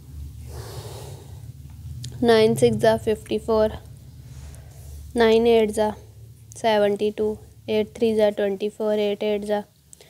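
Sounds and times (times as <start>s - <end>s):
low steady hum: 0.0s - 10.0s
person breathing out: 0.5s - 1.4s.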